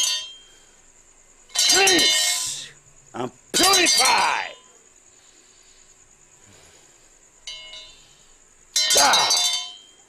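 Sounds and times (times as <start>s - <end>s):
bell-like metallic ring: 0.0s - 0.6s, 1.5s - 2.7s, 7.5s - 8.1s, 8.7s - 10.0s
clinking metal: 0.0s - 0.6s, 1.5s - 2.8s, 3.5s - 4.4s, 7.4s - 10.0s
loud yell: 3.6s - 4.7s, 8.9s - 9.5s.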